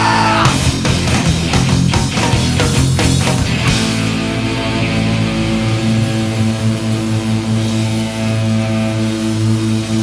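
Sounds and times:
sustained rock chord: 0.4s - 10.0s.

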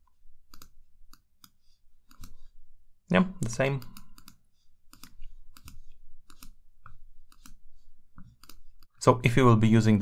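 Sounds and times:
computer mouse clicks: 0.5s - 2.5s, 3.4s - 7.6s, 8.2s - 8.9s.

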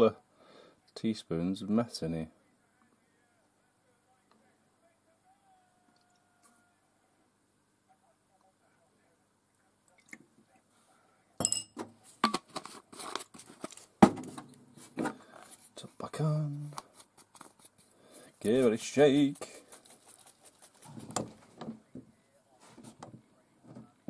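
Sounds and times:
teaspoon and glass clinking: 11.4s - 11.8s.

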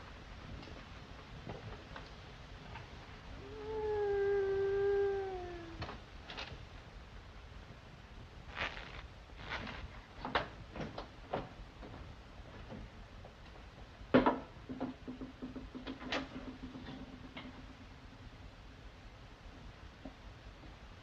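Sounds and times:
steady low hum: 0.0s - 14.1s.

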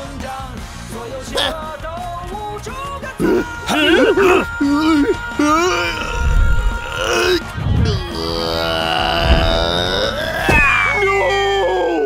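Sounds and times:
drawn-out vocal groan: 3.2s - 10.7s.

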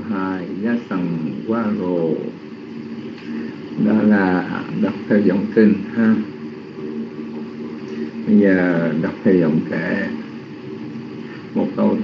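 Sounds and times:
steady low motor hum: 0.0s - 12.0s
man's voice: 3.8s - 6.3s, 8.3s - 10.2s, 11.6s - 12.0s.

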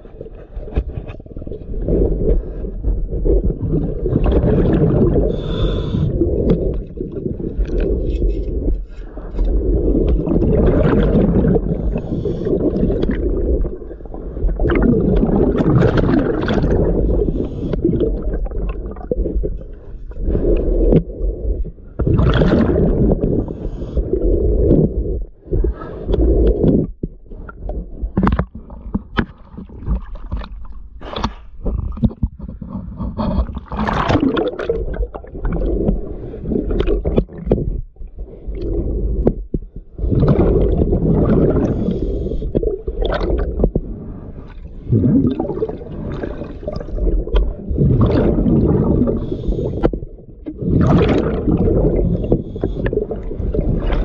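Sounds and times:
regulator bubbles underwater: 0.0s - 54.0s
knocks and splashes: 14.5s - 18.8s, 28.0s - 36.0s, 44.9s - 49.2s, 49.8s - 52.7s
scraping against hull: 26.0s - 42.0s.

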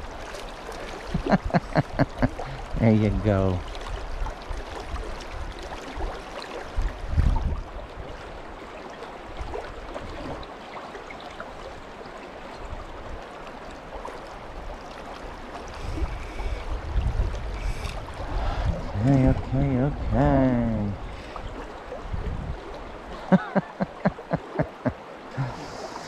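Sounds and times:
creek water running over rocks: 0.0s - 26.0s.

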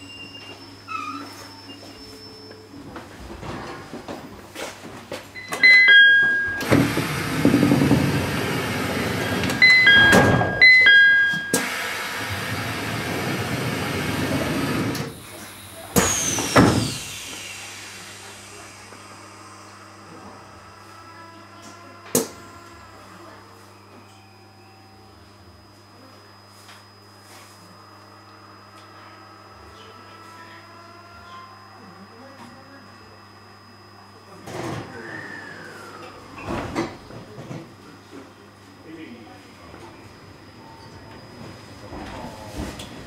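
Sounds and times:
two-tone door chime: 5.4s - 7.7s, 9.3s - 11.8s.

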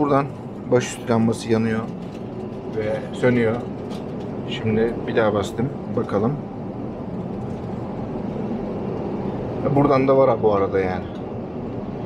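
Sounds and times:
airliner cabin engine hum: 0.0s - 12.0s.

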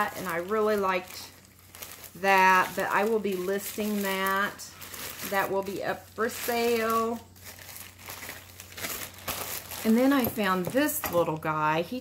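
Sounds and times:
plastic bag crinkling: 0.0s - 11.7s.

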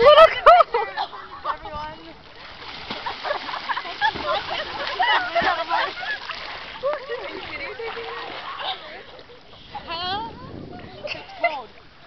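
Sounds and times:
water splashing: 1.2s - 12.0s.

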